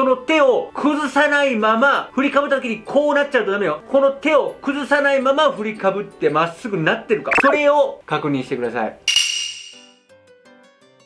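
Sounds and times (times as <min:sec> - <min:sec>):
quiet background music: 0:00.0 - 0:09.4.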